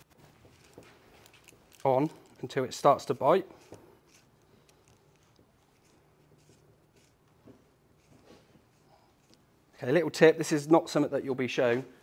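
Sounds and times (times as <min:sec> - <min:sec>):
faint scraping of metal fitting: 0:00.5 - 0:07.2.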